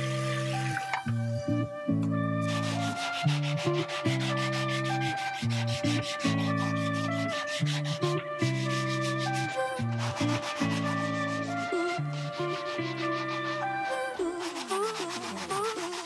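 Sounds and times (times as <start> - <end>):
background music: 0.0 - 16.0
sanding block rubbing wood: 2.4 - 16.0.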